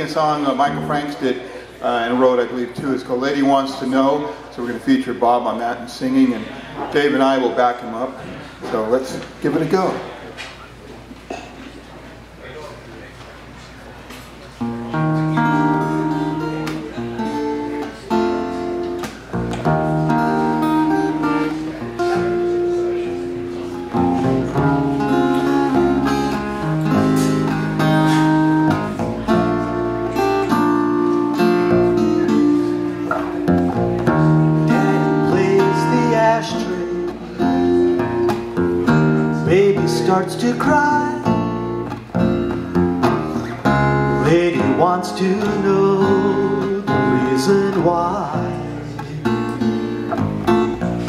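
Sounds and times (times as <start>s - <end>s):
acoustic bass guitar: 0.0s - 4.1s, 14.5s - 51.0s
acoustic guitar: 0.0s - 12.2s, 13.0s - 51.0s.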